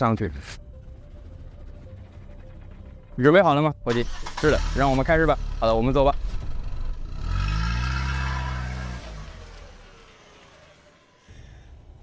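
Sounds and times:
vehicle engine revving away: 4.1 - 11.7.

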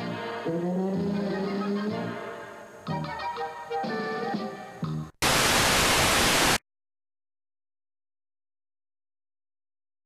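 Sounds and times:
static hiss: 0.0 - 6.6.

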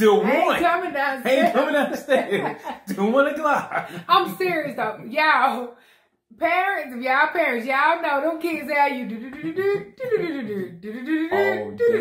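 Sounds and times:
woman talking animatedly: 0.2 - 1.8, 4.0 - 5.7, 6.4 - 9.3.

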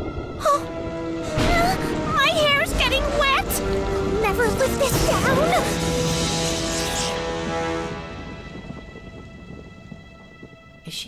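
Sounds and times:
rain: 0.0 - 10.8
rumbling thunder: 0.0 - 10.8.

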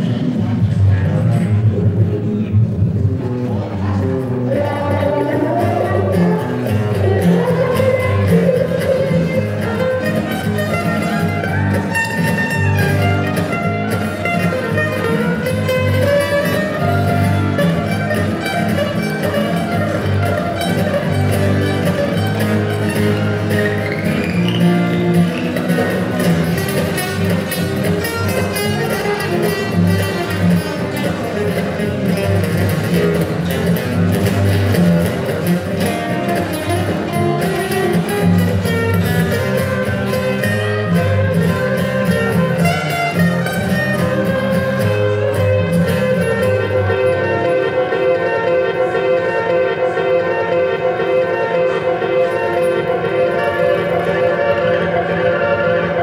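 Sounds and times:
solo acoustic guitar: 0.0 - 56.0.

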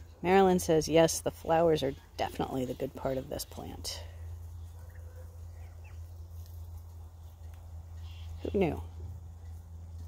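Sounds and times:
steady low rumble: 0.0 - 10.0
turkeys peeping: 1.5 - 10.0.

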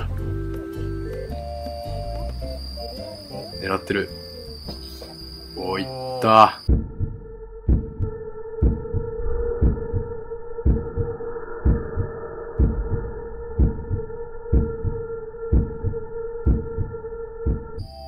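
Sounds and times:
steady hum: 6.5 - 18.0
heartbeat thumps: 6.6 - 17.9.

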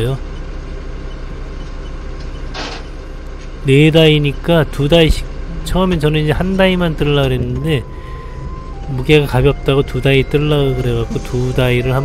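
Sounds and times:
forklift engine idling: 0.0 - 12.0.

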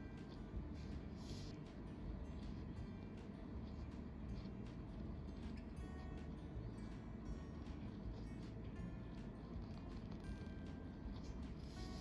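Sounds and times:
pen scratching on paper: 0.0 - 1.6, 3.6 - 5.7, 9.2 - 12.0
quiet background music: 0.0 - 12.0.

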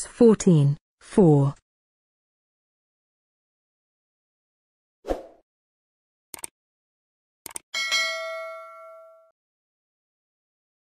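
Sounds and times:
bright bell ding: 7.8 - 9.3.

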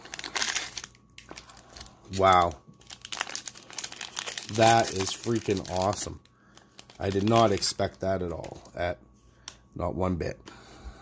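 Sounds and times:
card pack wrapper crinkling: 0.0 - 8.8.

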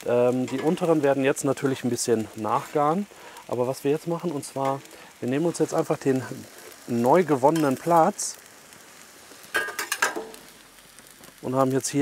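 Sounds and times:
onions sizzling: 0.0 - 12.0
metal utensils clinking: 9.6 - 10.3.

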